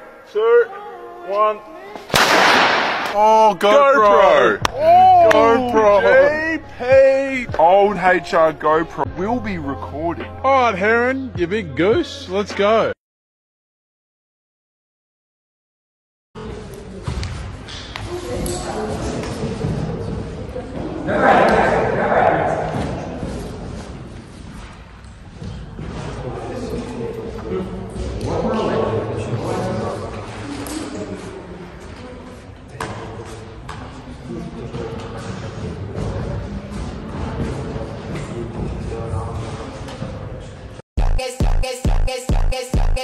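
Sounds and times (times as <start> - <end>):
music with voices: 4.6 - 13.0, 41.0 - 43.0
faint voices in echoing hall: 16.4 - 40.8.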